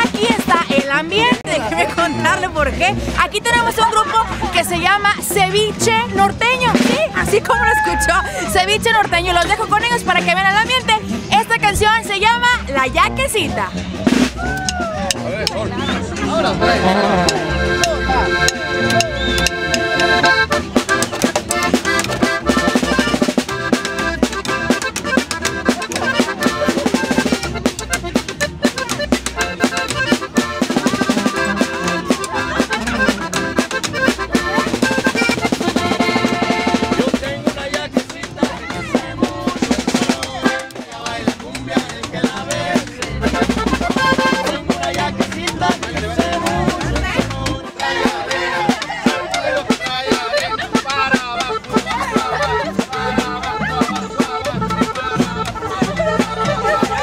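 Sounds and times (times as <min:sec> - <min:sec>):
accordion melody: 0:00.0 - 0:57.0
drums: 0:00.0 - 0:57.0.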